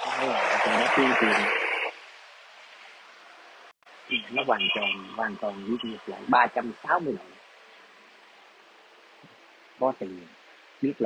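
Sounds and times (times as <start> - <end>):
man speaking: 0.0 - 1.5, 4.1 - 7.4, 9.8 - 11.0
loud static hiss: 0.0 - 11.0.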